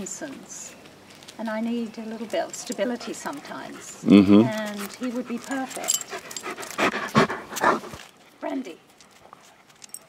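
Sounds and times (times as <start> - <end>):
dog panting: 2.6 - 10.0.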